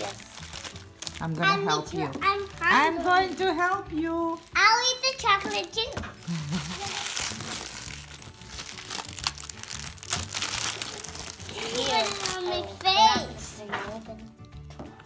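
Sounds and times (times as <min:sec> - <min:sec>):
foil wrapper crinkling: 0:00.0 - 0:12.9
child's voice: 0:01.4 - 0:03.2, 0:04.5 - 0:06.1, 0:06.7 - 0:07.2, 0:11.0 - 0:14.3.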